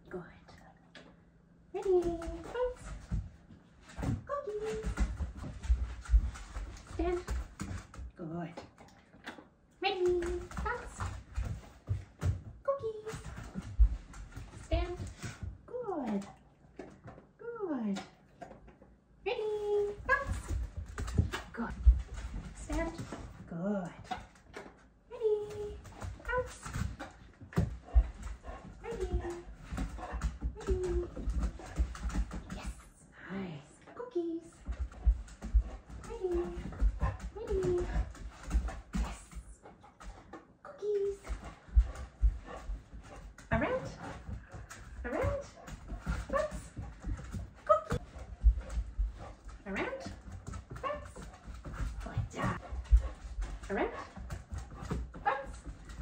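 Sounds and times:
footsteps and paws on floor: 0.2 - 56.0.

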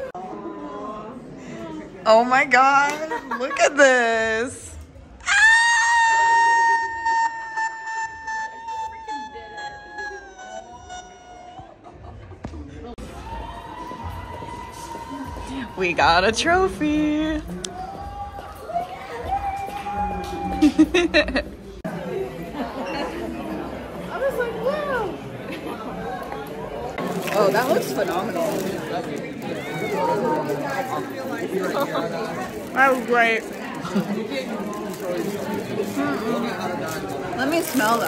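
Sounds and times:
group of people chattering: 0.0 - 38.0
woman screaming: 5.2 - 10.2.

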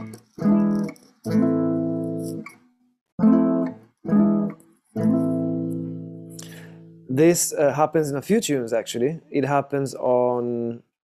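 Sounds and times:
acoustic guitar chords: 3.2 - 7.2.

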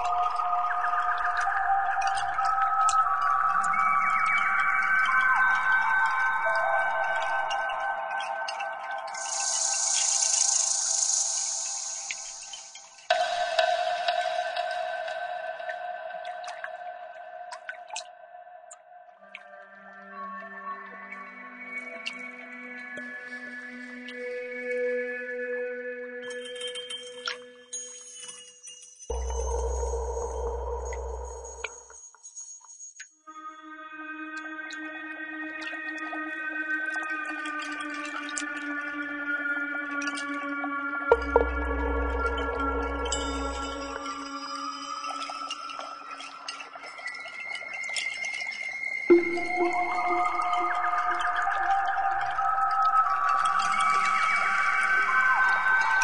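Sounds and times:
ambient music with long-held tones: 0.0 - 56.0
water drips: 0.1 - 19.5, 29.1 - 32.0, 41.1 - 56.0.

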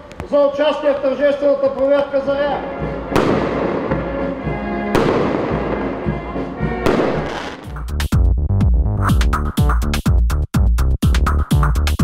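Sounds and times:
fireworks bangs: 3.1 - 4.2, 4.9 - 5.9, 6.8 - 7.8
fireworks crackle: 6.9 - 7.8.

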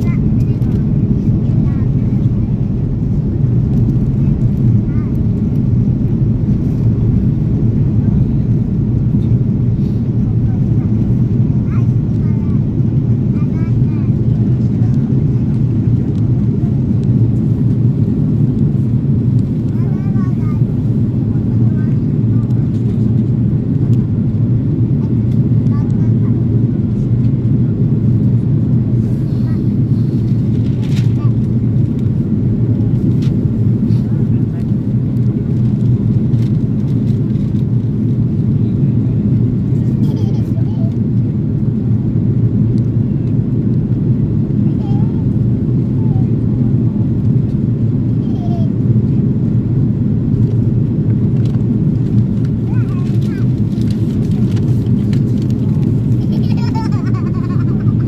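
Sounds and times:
airplane cabin rumble: 0.0 - 58.0.

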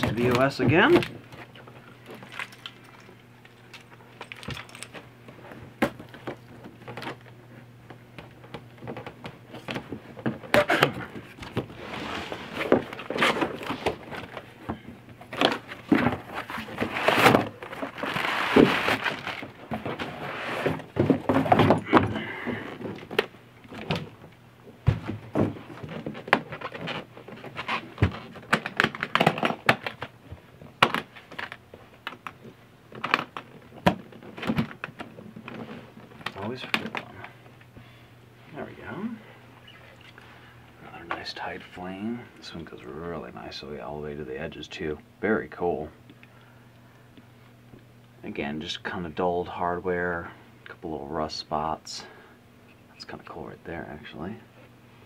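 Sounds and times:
cardboard rustling: 9.6 - 24.1
case scraping out of box: 10.5 - 14.4, 15.4 - 21.9.

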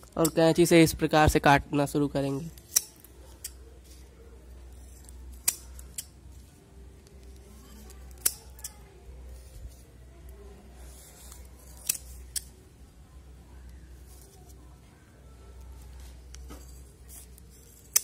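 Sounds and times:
scissors snipping plastic bags: 4.8 - 6.2, 7.0 - 8.8, 11.2 - 12.6, 16.3 - 18.0.

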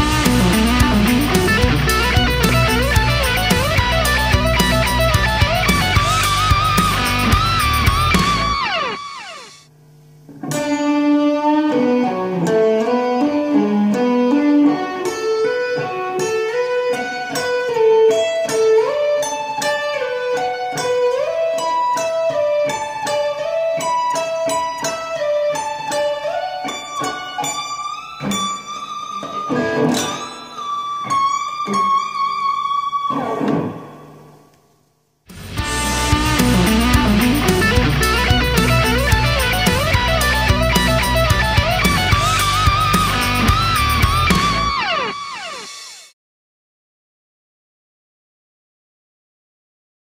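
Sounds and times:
electric guitar arpeggio lick: 0.0 - 9.6, 10.3 - 34.4, 35.3 - 46.1.

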